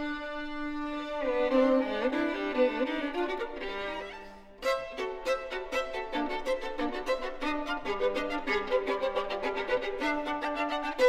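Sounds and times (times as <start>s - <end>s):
solo violin played with bow: 0.0s - 11.0s.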